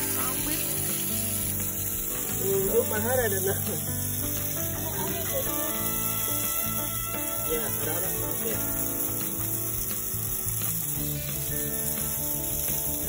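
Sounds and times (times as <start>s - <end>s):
background music with held notes: 0.0s - 13.0s
water spraying from hose nozzle: 0.0s - 13.0s.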